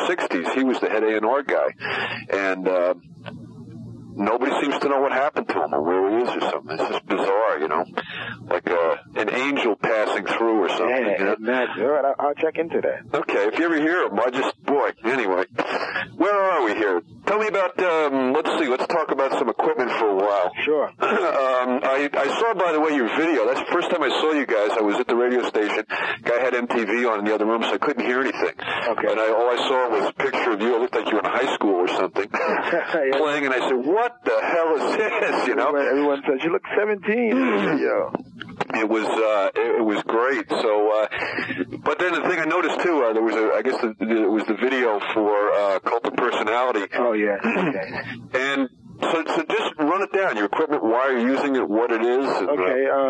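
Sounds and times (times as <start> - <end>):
man talking: 0.0 - 3.0, 4.0 - 53.0.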